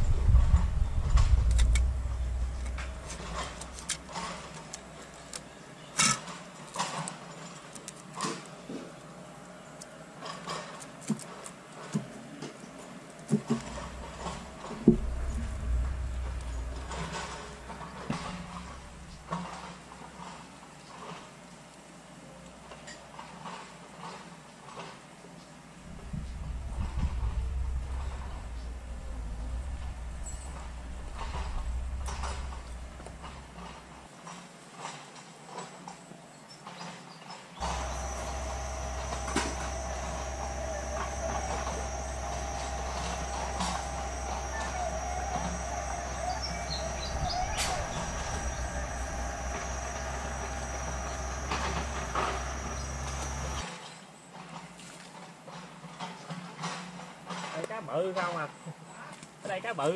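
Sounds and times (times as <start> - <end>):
low rumble: 0.0 - 5.4, 13.6 - 19.4, 25.8 - 34.1, 37.6 - 53.6.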